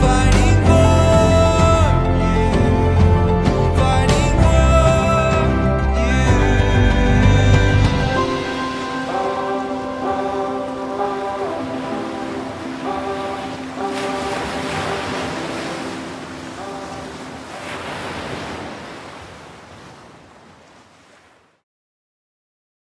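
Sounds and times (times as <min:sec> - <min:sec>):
soft music: 0:00.0 - 0:17.9
ocean waves washing onto beach: 0:08.2 - 0:21.6.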